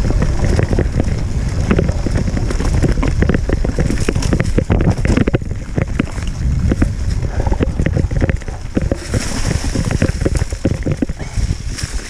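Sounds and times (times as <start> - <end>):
bike rattles and knocks: 0.0 - 12.0
low rumble of bike on trail: 0.0 - 12.0
wind buffeting microphone: 0.0 - 12.0.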